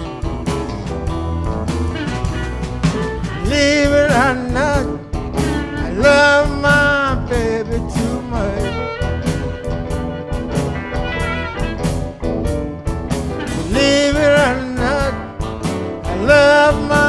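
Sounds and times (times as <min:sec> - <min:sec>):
electric blues band playing: 0:00.0 - 0:17.0
harmonica bending notes: 0:00.0 - 0:17.0.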